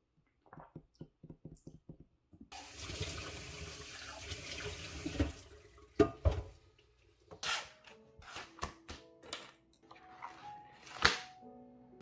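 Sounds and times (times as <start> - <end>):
water running into sink: 2.5 - 6.8.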